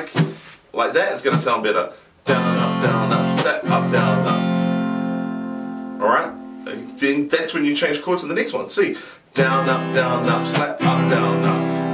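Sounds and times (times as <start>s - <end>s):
acoustic guitar chord ringing: 2.3s - 7.0s, 9.4s - 11.9s.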